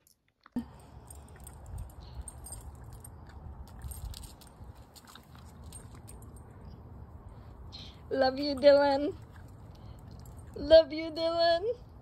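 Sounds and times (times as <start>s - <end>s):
dog collar tag jingling: 0.7s - 6.8s.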